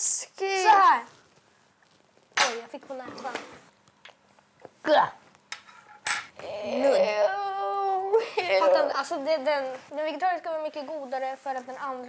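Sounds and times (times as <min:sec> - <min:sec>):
child moaning: 0:06.4 - 0:08.9.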